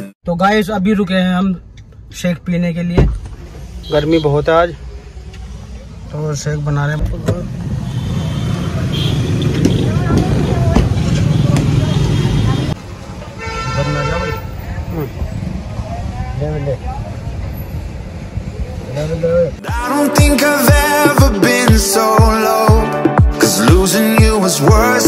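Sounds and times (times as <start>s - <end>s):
street noise: 0.0s - 25.0s
vehicle horn honk: 3.8s - 4.5s, 7.8s - 10.0s, 13.4s - 14.6s.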